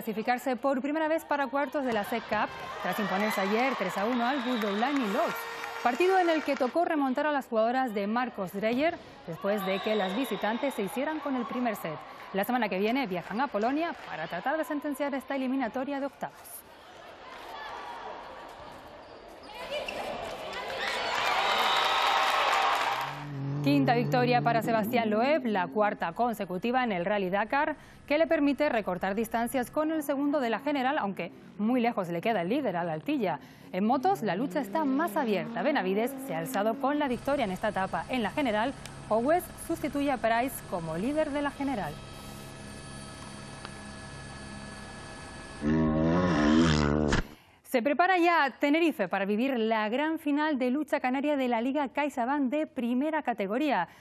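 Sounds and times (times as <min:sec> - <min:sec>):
indoor hall noise: 0:01.2 - 0:07.3, 0:16.0 - 0:25.5
crowd cheering: 0:01.7 - 0:07.3, 0:08.0 - 0:15.5, 0:19.6 - 0:25.1
motorcycle engine revving hard: 0:23.0 - 0:25.1, 0:33.9 - 0:38.6.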